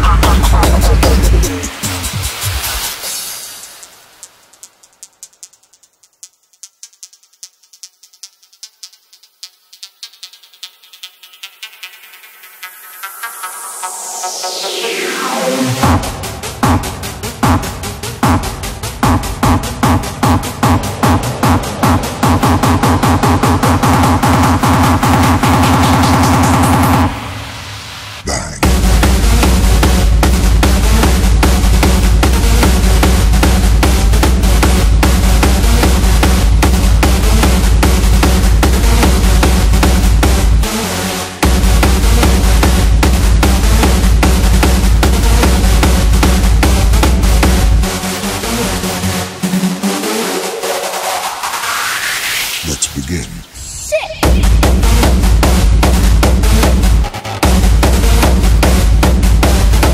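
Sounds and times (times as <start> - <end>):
kick-drum pattern: 0.0 - 2.7, 15.7 - 27.2, 28.3 - 40.7, 41.4 - 48.0, 54.2 - 59.9
hardstyle electronic dance music: 0.0 - 7.9, 9.8 - 59.9
rising noise sweep: 12.8 - 16.5, 19.4 - 24.3
noise wash: 18.6 - 24.9
electronic snare roll: 19.0 - 27.9.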